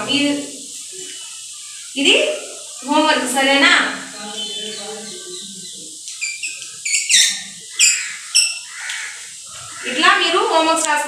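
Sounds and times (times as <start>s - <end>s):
chalk squeaking on blackboard: 6.1s - 9.8s.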